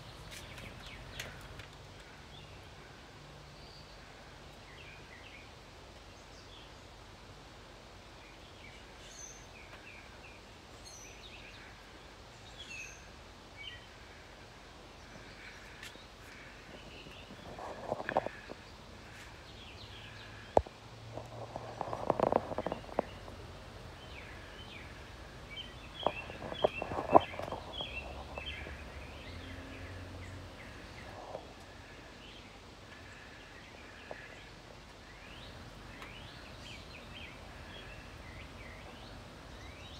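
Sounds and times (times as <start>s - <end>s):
small birds chirping: 0.0s - 39.9s.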